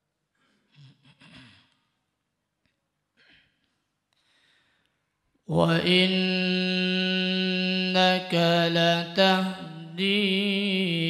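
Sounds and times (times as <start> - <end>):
person breathing in deeply: 4.2 - 5.0.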